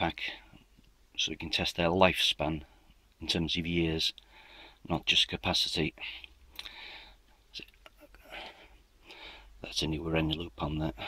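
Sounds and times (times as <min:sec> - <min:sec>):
faint breathing: 0:04.2 - 0:04.9, 0:06.0 - 0:07.4, 0:08.0 - 0:09.6.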